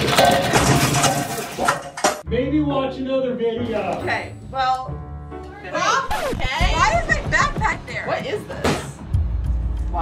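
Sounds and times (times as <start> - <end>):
dishes and glasses crashing: 0.0 - 2.2.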